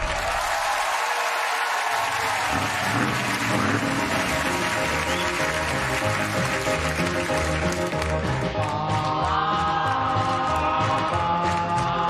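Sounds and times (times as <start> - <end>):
audience applause: 0.0 - 9.6
retro music with bass line: 2.5 - 12.0.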